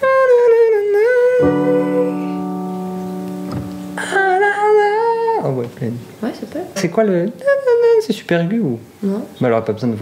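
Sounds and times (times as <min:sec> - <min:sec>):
person singing high note: 0:00.0 - 0:05.5
guitar chord ringing: 0:01.4 - 0:05.5.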